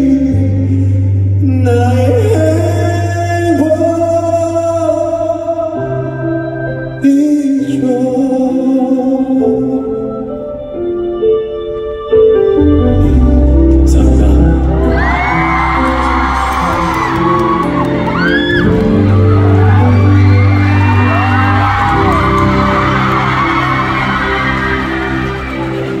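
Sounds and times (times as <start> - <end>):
held keyboard chords: 5.8 - 26.0
bass line: 12.6 - 26.0
audience screaming and cheering: 14.0 - 26.0.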